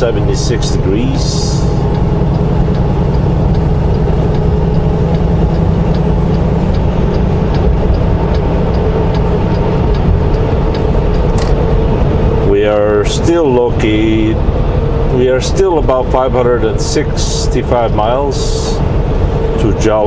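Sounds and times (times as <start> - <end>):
truck engine and tyre drone: 0.0 - 20.0.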